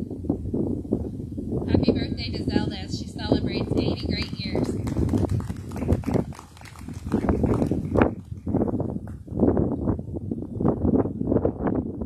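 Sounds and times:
people clapping: 3.6 - 9.2.

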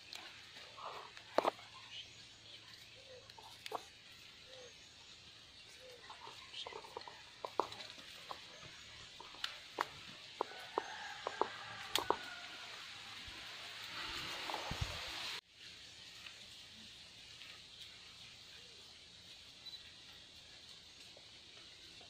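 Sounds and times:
faint voices: 0.0 - 12.7
steady high hiss: 7.3 - 22.0.

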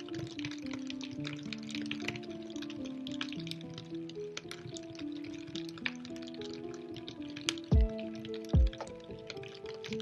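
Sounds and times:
rain drops ticking: 0.0 - 10.0
slow soft instrumental music: 0.0 - 10.0.

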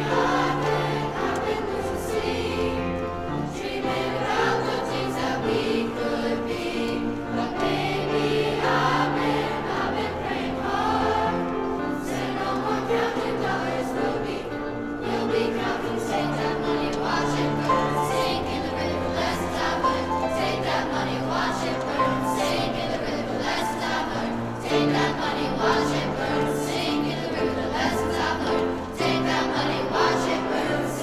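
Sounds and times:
choir singing in parts: 0.0 - 31.0
piano accompaniment: 0.0 - 31.0.

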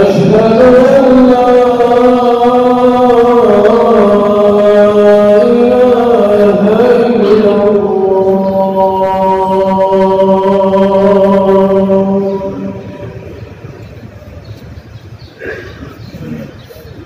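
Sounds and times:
man chanting a long note: 0.0 - 13.3
crowd murmur: 12.5 - 17.0.

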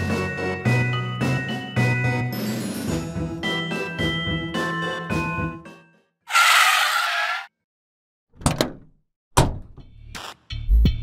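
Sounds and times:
music: 0.0 - 6.2, 9.7 - 11.0.

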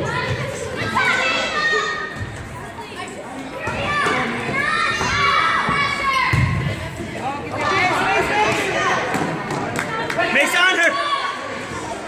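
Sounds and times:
people shouting and cheering: 0.0 - 2.5, 3.6 - 12.0.

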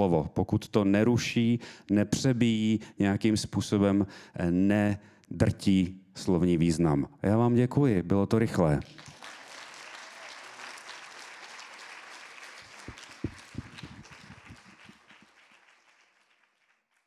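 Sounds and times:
audience applauding: 8.9 - 17.0.

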